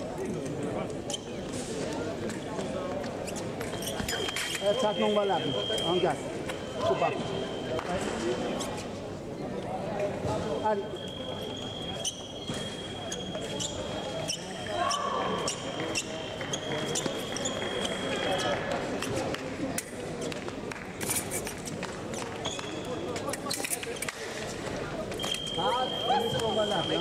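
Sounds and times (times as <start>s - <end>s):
chatter in large hall: 0.0s - 27.0s.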